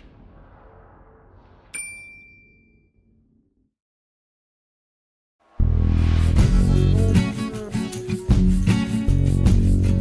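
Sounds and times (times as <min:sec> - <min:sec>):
notification bell ding: 0:01.8 - 0:02.7.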